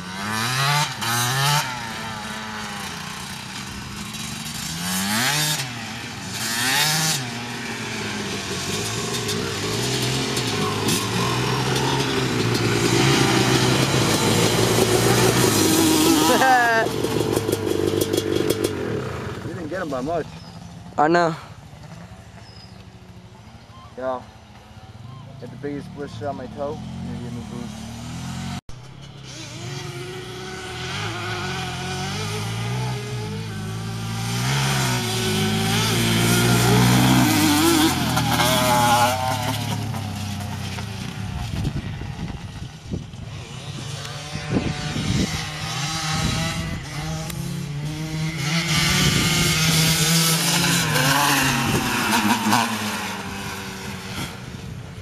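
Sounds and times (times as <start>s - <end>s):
quad engines racing: 0.0s - 55.0s.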